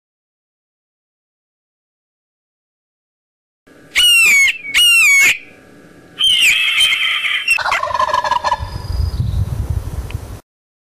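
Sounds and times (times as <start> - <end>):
bird call: 4.0 - 5.5, 6.2 - 9.2
bird screeches: 4.0 - 5.5, 6.2 - 7.7
turkey gobble: 6.2 - 8.8.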